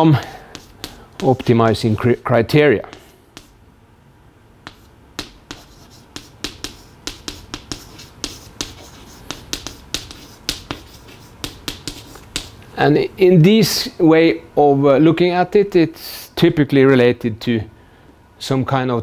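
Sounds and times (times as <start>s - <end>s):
chalk tapping on chalkboard: 0.2s - 3.6s, 4.6s - 12.6s.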